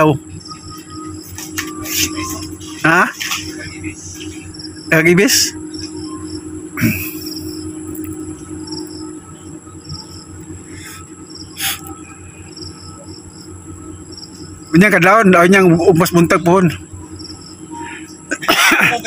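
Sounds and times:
voice-like calls: 0.0 - 7.8
insects trilling: 0.0 - 19.0
pulsing insect chirp: 0.0 - 19.0.

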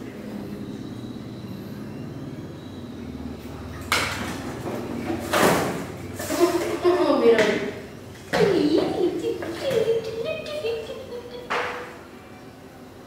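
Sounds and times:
scraping rustling noises: 6.1 - 6.9.

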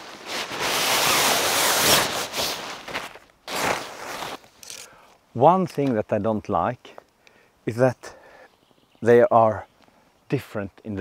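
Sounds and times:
nylon tent fabric rustling: 0.0 - 4.8.

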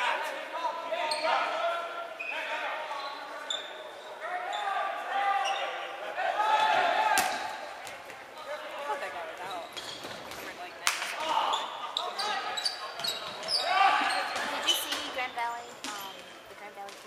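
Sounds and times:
players shouting in gym: 0.0 - 7.8, 11.1 - 15.1.

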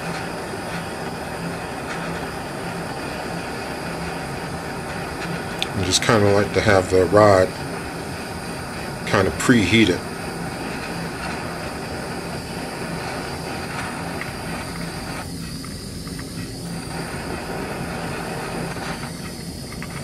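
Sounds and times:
gas torch flame hissing: 0.0 - 20.0.

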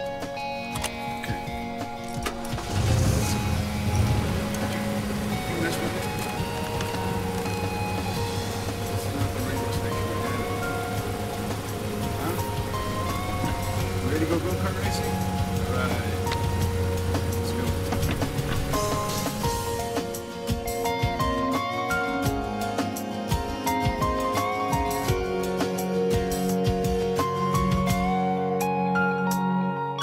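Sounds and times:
car engine running: 0.0 - 20.8
background music sustained notes: 0.0 - 30.0.

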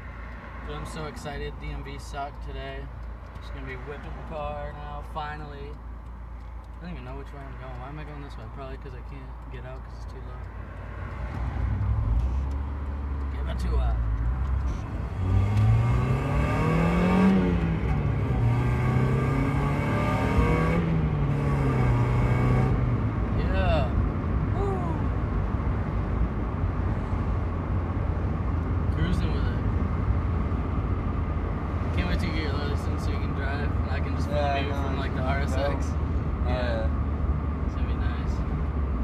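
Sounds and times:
car engine revving from inside cabin: 14.2 - 23.0.

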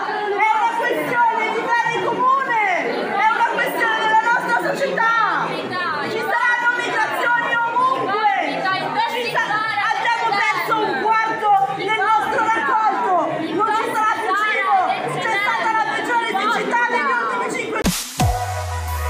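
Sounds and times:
chatter of voices: 0.0 - 18.4.

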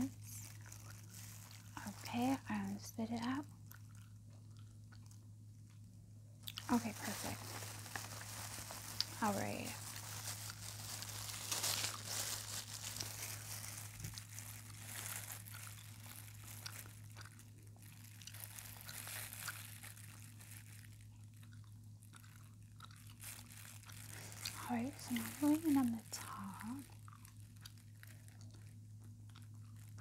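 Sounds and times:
crinkly material rustling: 0.0 - 4.1, 6.4 - 30.0
faint electrical hum: 0.0 - 30.0.

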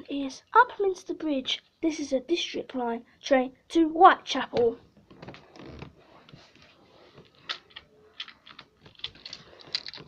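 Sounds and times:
soft rustles: 5.0 - 10.0.

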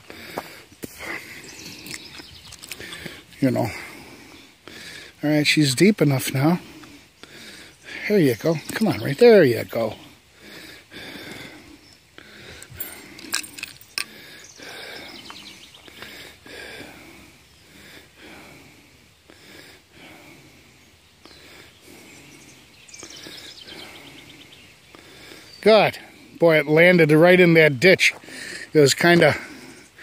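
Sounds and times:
low steady background hiss: 0.0 - 30.0.

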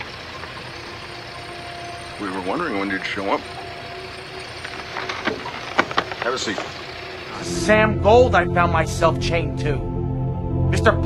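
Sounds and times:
faint held tones: 0.0 - 7.4.

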